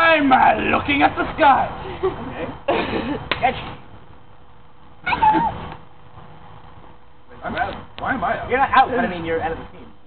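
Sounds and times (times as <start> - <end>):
wavering meow-like cry: 5.0 - 5.6.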